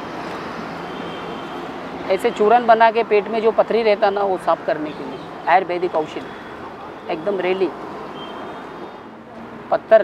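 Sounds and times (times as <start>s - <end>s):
traffic hum: 0.0s - 10.0s.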